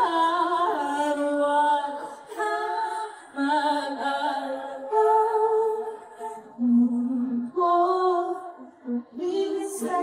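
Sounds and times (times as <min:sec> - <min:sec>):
woman singing a cappella: 0:00.0 - 0:10.0.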